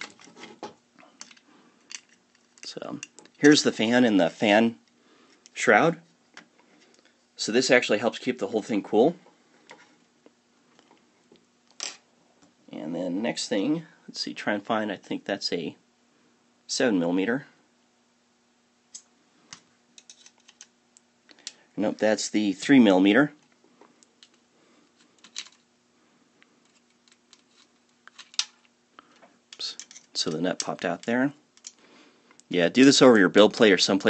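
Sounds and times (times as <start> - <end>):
faint steady hum: 0.0 - 34.0
plastic parts clicking: 26.6 - 28.7.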